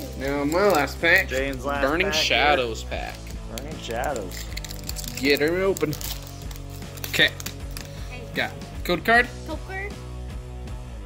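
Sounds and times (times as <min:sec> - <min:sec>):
foil pack crinkling: 0:00.0 - 0:02.1, 0:02.9 - 0:08.1
background music: 0:00.0 - 0:11.0.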